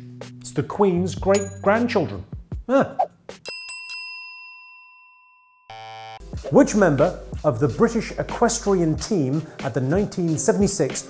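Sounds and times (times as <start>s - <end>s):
bell-like ding: 1.3s - 1.9s, 3.4s - 5.7s.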